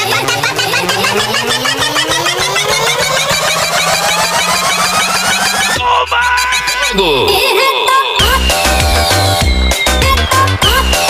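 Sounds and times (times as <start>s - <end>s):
rising synth sweep: 0.0s - 5.8s
fast electronic pulse: 0.0s - 5.9s.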